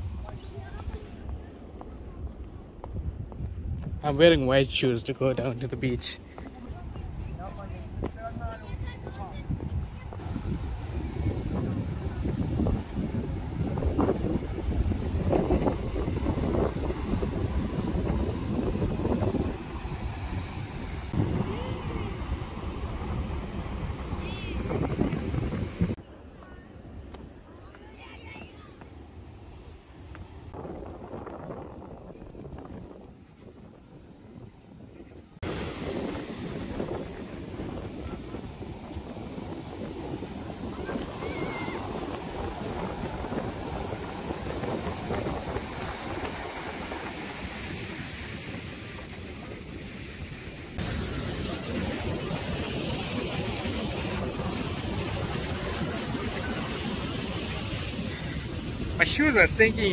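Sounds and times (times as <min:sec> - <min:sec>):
wind buffeting microphone: 0:00.0 - 0:59.9
ocean waves breaking on beach: 0:05.9 - 0:26.0, 0:35.4 - 0:59.9.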